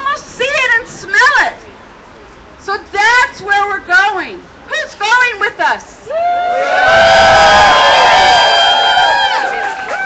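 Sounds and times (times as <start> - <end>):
crowd cheering and shouting: 6.0 - 10.0.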